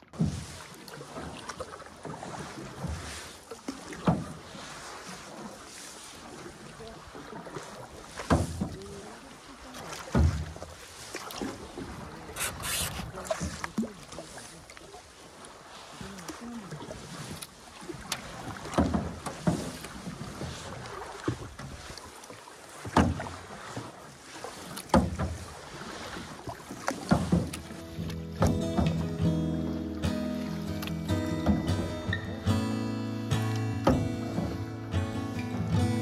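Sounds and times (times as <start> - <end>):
paddle strokes splashing: 0.0 - 36.0
water moving along hull: 0.0 - 36.0
acoustic guitar music: 27.6 - 36.0.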